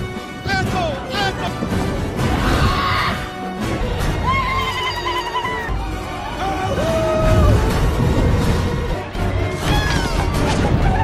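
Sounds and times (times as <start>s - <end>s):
dramatic orchestral music: 0.0s - 11.0s.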